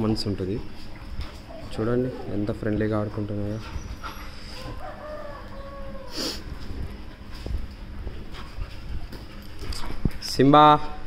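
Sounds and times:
dogs scuffling and breathing: 0.0s - 10.5s.

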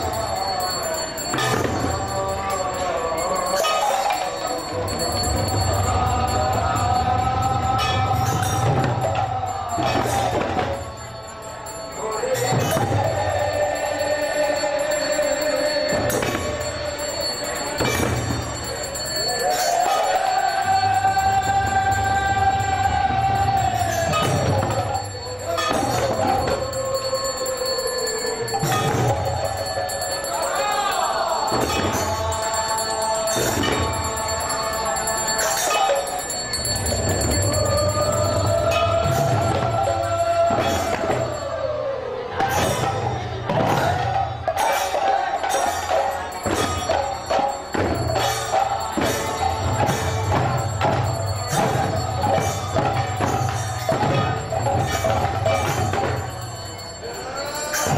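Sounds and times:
long steady ringing tone: 0.0s - 43.4s, 44.3s - 57.9s
bells ringing: 0.0s - 57.9s
drums: 0.0s - 57.9s.

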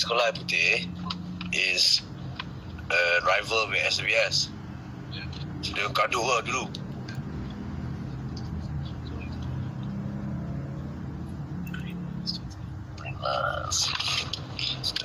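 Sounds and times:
muffled voices: 0.0s - 6.8s, 11.6s - 15.0s
car engine drone in cabin: 0.0s - 15.0s
road noise: 0.0s - 15.0s.

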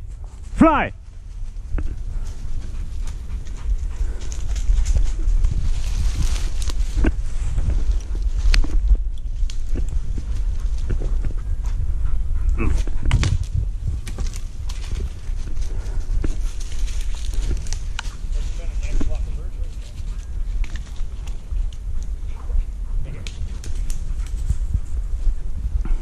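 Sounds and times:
footsteps through dry brush: 0.0s - 11.8s, 12.8s - 22.3s
wind rumble: 0.0s - 26.0s
microphone handling: 4.9s - 11.9s, 12.5s - 16.5s
twigs snapping: 5.8s - 11.0s, 12.8s - 18.3s, 20.2s - 22.1s.

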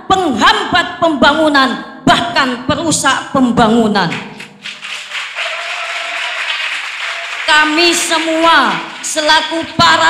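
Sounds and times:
speaker's voice echoing: 0.0s - 10.0s
audience clapping: 4.1s - 10.0s.

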